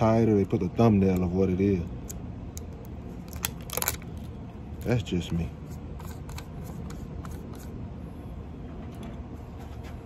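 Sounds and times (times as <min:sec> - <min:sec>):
man speaking: 0:04.8 - 0:05.6.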